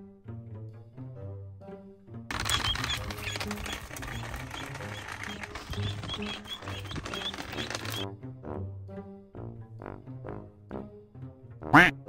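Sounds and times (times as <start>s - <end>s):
background music: 0.0s - 12.0s
cart and feet crunching leaves: 2.3s - 8.0s
goslings peeping: 2.3s - 8.0s.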